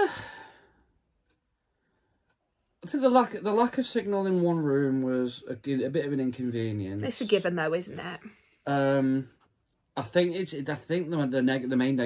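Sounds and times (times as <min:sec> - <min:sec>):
breathy sigh: 0:00.0 - 0:00.9.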